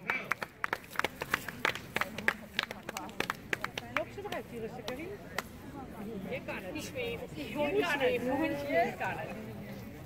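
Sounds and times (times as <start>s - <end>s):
people clapping: 0.0s - 5.6s
faint voices: 0.0s - 10.0s.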